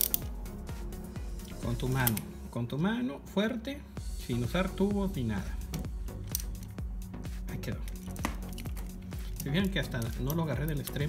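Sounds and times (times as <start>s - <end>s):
socket ratchet clicking: 0.0s - 0.4s, 5.7s - 6.8s, 7.8s - 11.0s
background music: 0.0s - 11.0s.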